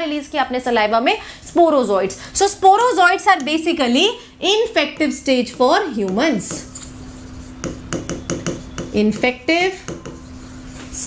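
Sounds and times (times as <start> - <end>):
pen scraping on writing board: 5.0 - 11.0.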